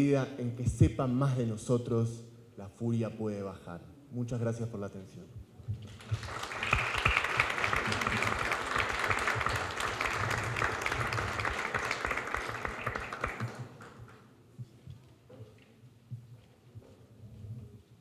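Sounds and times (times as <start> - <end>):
audience applauding: 5.9 - 14.2.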